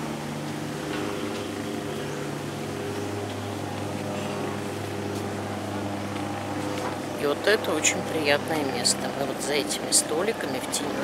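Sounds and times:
low engine drone: 0.0 - 11.0.

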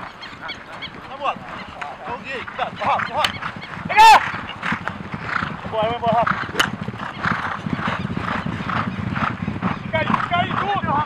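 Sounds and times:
hoofbeats on grass: 0.0 - 11.0
people shouting: 3.8 - 4.3
sharp crack: 6.5 - 6.8.

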